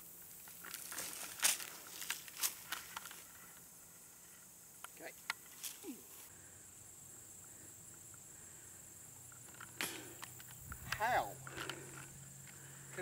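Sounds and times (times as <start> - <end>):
high insect buzz: 0.0 - 13.0.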